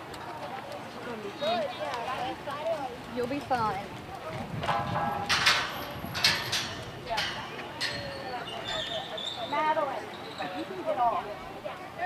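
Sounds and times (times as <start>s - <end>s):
people talking indistinctly: 0.4s - 12.0s.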